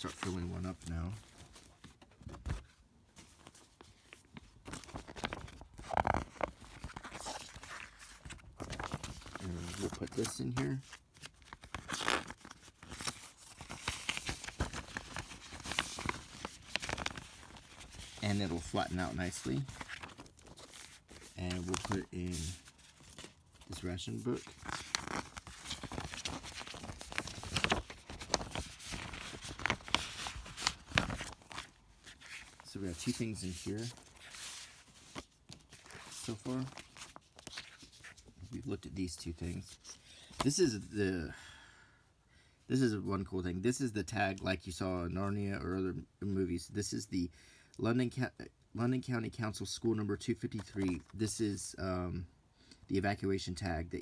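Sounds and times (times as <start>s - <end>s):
paper and plastic rustling: 0.0s - 38.8s
plastic crinkle: 4.9s - 38.3s.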